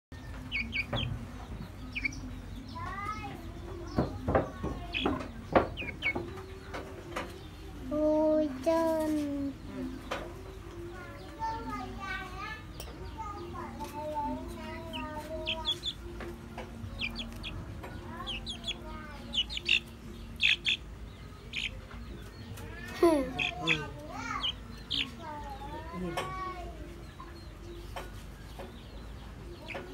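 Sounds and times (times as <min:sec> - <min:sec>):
chicken chirping: 0:00.1 - 0:07.9, 0:08.5 - 0:29.9
chick cheeping: 0:00.2 - 0:01.2, 0:01.8 - 0:03.2, 0:04.9 - 0:07.1, 0:16.9 - 0:25.2.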